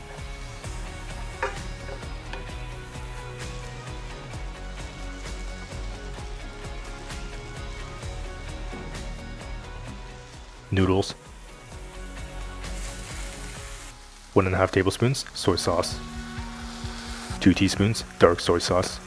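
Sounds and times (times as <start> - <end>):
vegetables sizzling in oil: 0.0 - 4.4, 9.8 - 19.0
background music: 0.0 - 19.0.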